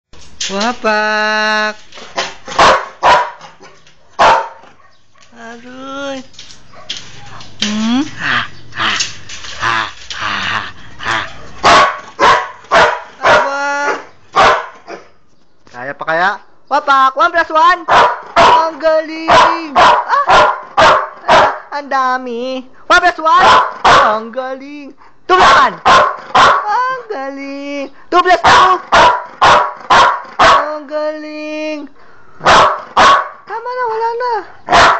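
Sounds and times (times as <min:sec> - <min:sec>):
dog barking: 0:02.5 - 0:03.5, 0:04.1 - 0:05.0, 0:11.2 - 0:15.1, 0:17.9 - 0:18.7, 0:19.3 - 0:21.7, 0:23.4 - 0:24.2, 0:25.4 - 0:26.7, 0:28.4 - 0:30.7, 0:32.4 - 0:33.4, 0:34.7 - 0:34.9.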